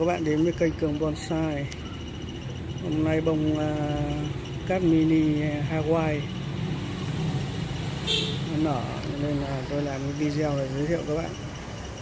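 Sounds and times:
man speaking: 0:00.0 - 0:01.8, 0:02.8 - 0:06.4, 0:08.4 - 0:11.4
vehicle engine idling: 0:00.0 - 0:12.0.

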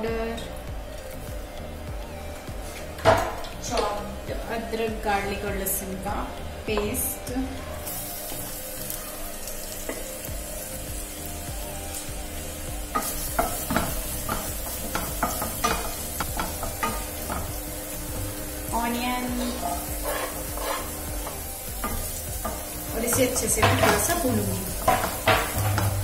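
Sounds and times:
food sizzling in hot oil: 0:02.5 - 0:26.0
wooden spatula scraping pan: 0:19.3 - 0:26.0.

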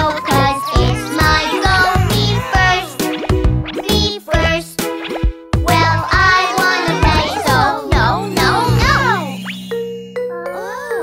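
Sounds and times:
upbeat children's cartoon song: 0:00.0 - 0:09.8.

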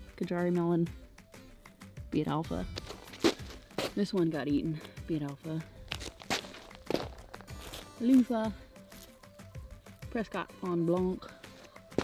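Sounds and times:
quiet background music: 0:00.0 - 0:12.0
footsteps: 0:02.6 - 0:04.0, 0:05.9 - 0:08.3, 0:11.4 - 0:12.0.

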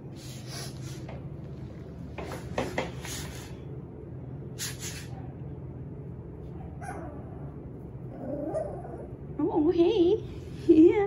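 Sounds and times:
steady low hum: 0:00.0 - 0:11.0
puppy whimpering: 0:08.1 - 0:09.2
woman speaking: 0:09.4 - 0:11.0.

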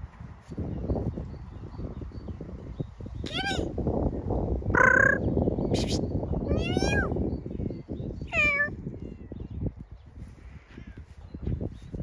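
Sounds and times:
cat meowing: 0:08.3 - 0:08.7.

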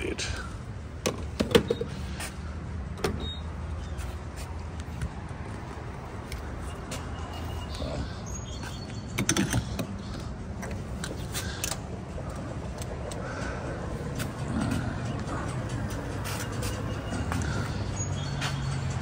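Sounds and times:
fuel pump humming and rushing: 0:07.8 - 0:19.0.

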